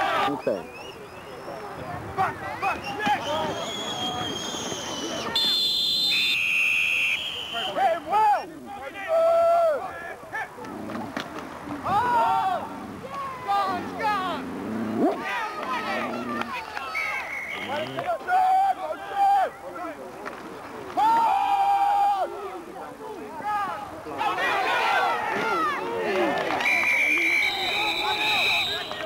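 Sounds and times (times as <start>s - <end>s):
people shouting calls: 1.5s - 10.7s, 11.8s - 14.4s, 15.0s - 20.0s, 23.3s - 29.0s
referee's whistle blasts: 2.8s - 8.1s, 16.9s - 17.9s, 26.6s - 29.0s.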